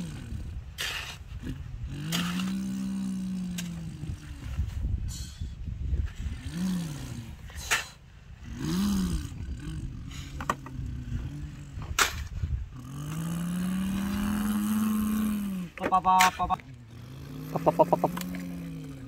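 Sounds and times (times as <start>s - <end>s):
person imitating truck engine: 0.0s - 0.7s, 1.4s - 5.4s, 6.3s - 7.6s, 8.4s - 12.0s, 12.7s - 19.0s.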